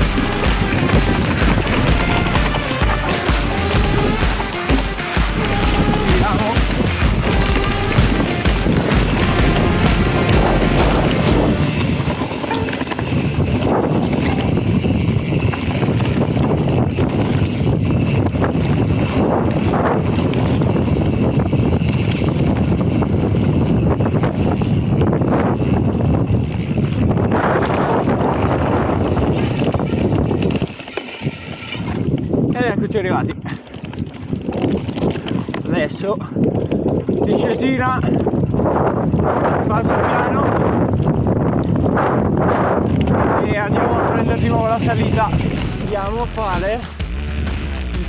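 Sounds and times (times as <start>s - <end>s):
background music with steady beat: 0.0s - 12.0s, 45.3s - 48.0s
bike tyres rolling on dirt trail: 0.0s - 47.0s
wind on microphone: 0.0s - 48.0s.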